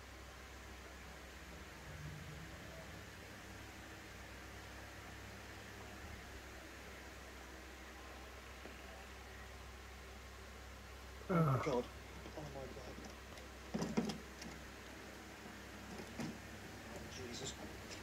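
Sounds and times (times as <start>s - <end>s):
low hum: 0.0s - 17.6s
faint steady hiss: 0.0s - 18.0s.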